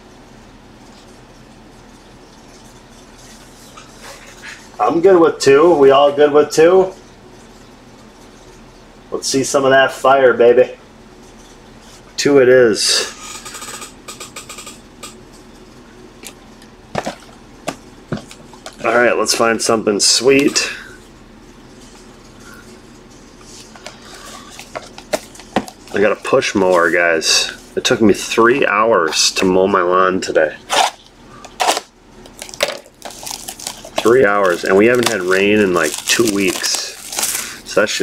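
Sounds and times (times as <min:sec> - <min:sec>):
plastic shrink-wrap crinkling and tearing: 0:30.7 - 0:37.9.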